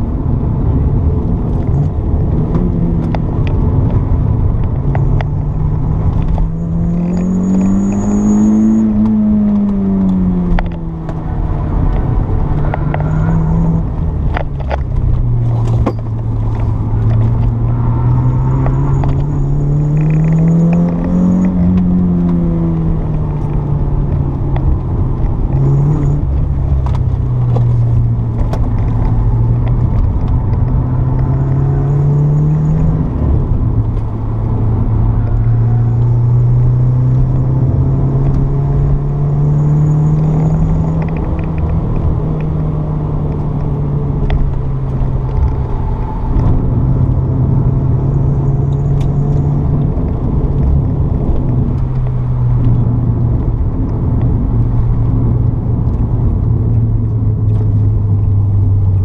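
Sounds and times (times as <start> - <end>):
car engine accelerating: 0.0 - 59.0
road and tyre noise: 0.0 - 59.0.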